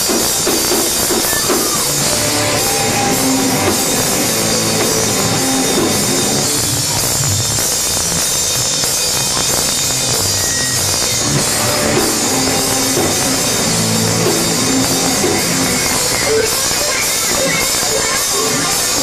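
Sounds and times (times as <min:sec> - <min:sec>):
rock band playing live: 0:00.0 - 0:19.0.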